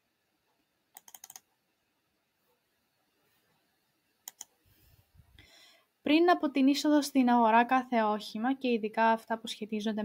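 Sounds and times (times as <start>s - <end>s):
keyboard keystrokes: 1.0s - 1.4s, 4.3s - 4.5s.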